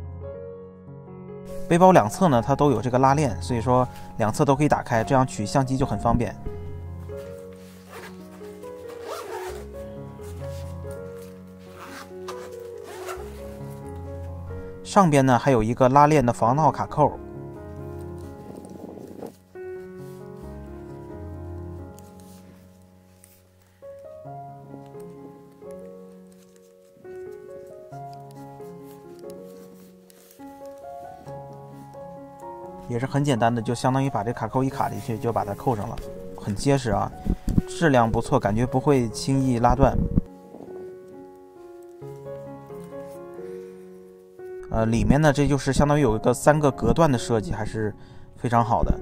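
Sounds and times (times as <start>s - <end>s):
background music with held notes: 0.0s - 49.0s
backpack zipper zip: 7.7s - 10.6s, 11.6s - 13.8s, 18.4s - 19.4s.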